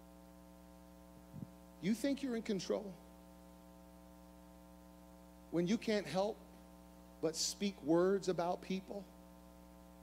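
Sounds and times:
electrical mains hum: 0.0 - 10.0
man's voice: 1.8 - 3.0.

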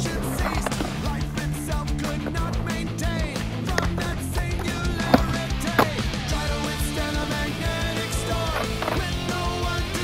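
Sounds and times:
rock song with guitar: 0.0 - 10.0
skateboard wheels rolling on concrete: 0.0 - 10.0.

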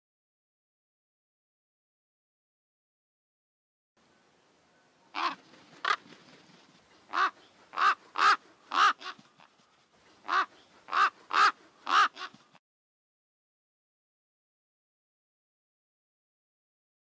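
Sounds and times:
crow cawing: 7.1 - 9.2, 10.2 - 12.4.

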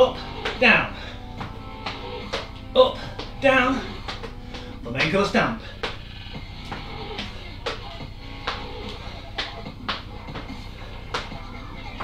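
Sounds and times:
background music: 0.0 - 12.0
feet stamping on exercise step: 0.4 - 11.4.

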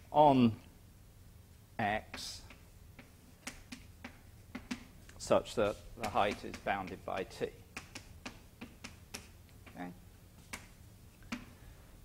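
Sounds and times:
taps of writing on a board: 2.1 - 4.9, 5.7 - 10.7.

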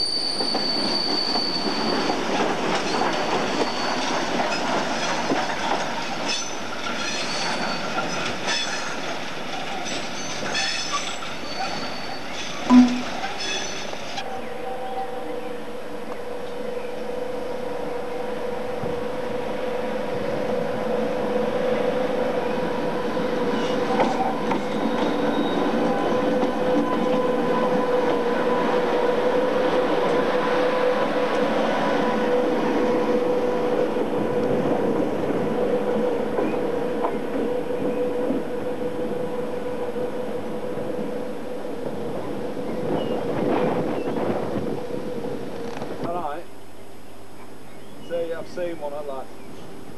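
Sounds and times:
train high whine: 10.1 - 47.5.

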